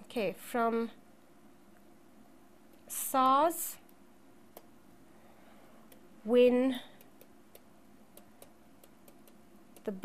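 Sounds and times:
stylus tapping on tablet: 7.0 - 9.9.

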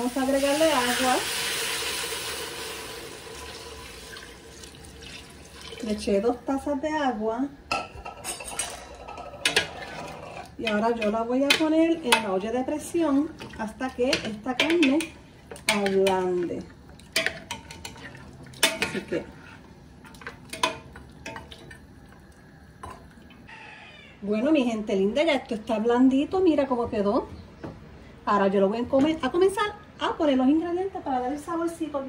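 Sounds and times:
utensil clinking on metal pot: 7.7 - 12.4, 17.1 - 19.2, 20.0 - 21.8.

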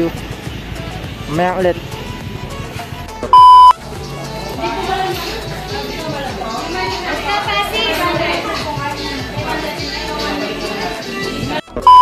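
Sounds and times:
quiet background music: 0.0 - 12.0
loud electronic beep: 3.3 - 3.8, 11.8 - 12.0.

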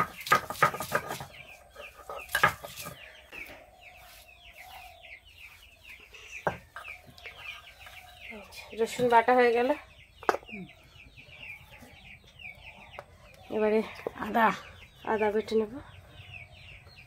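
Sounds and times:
chickens clucking and chirping: 0.0 - 17.0.

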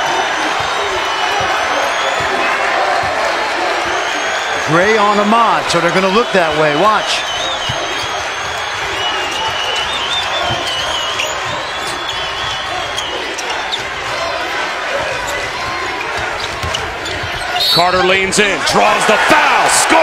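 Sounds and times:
arena crowd noise: 0.0 - 20.0.

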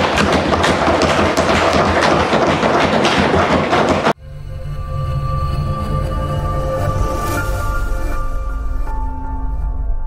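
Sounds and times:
knocking on wooden desks: 0.0 - 4.2.

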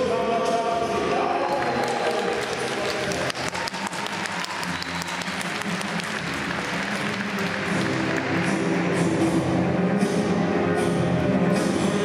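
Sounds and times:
music over arena speakers: 0.0 - 12.0
audience applause: 1.4 - 9.1.

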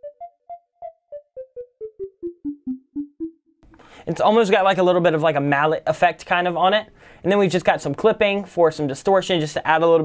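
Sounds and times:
synth bass plucks: 0.0 - 3.7.

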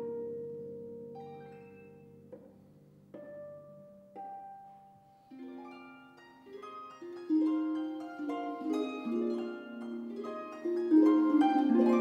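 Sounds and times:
harp notes plucked: 0.0 - 12.0.

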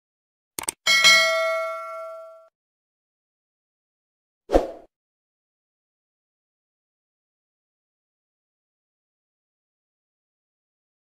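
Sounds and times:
notification bell chime: 0.9 - 2.5.

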